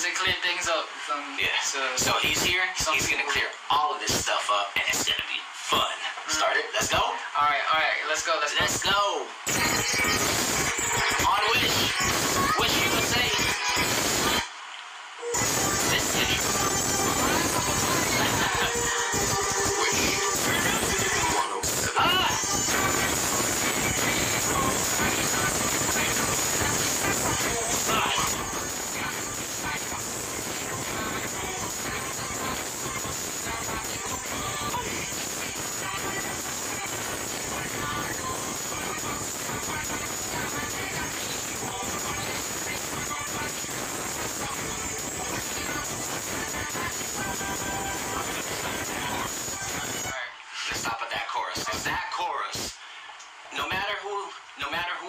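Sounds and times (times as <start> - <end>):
music playback: 0.0 - 7.6, 8.3 - 55.0
hiss: 9.5 - 14.5, 15.3 - 50.1.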